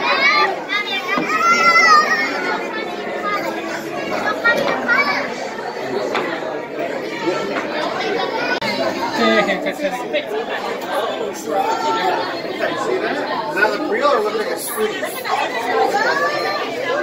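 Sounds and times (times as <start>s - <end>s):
high child's call: 0.0s - 2.7s
young children's voices: 0.0s - 9.8s, 11.0s - 17.0s
crowd chatter in a hall: 0.0s - 17.0s.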